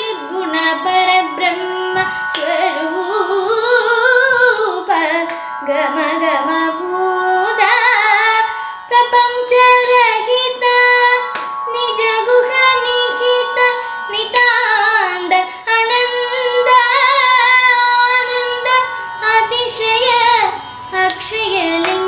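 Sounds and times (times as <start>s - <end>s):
boy singing ornamented melody: 0.0s - 22.0s
steady backing drone: 0.0s - 22.0s.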